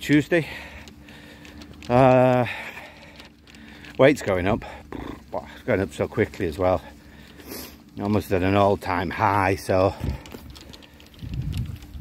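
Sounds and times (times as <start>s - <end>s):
phone microphone jostling rumble: 0.0s - 12.0s
faint footsteps: 0.6s - 12.0s.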